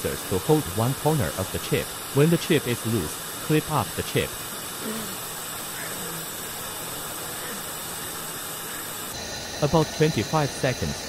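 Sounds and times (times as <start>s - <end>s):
hot air gun hissing: 0.0s - 11.0s.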